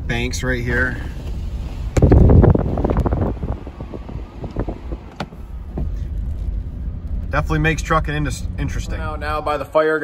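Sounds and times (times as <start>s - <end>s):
truck driving rumble: 0.0s - 10.0s
wind buffeting microphone: 1.6s - 7.2s.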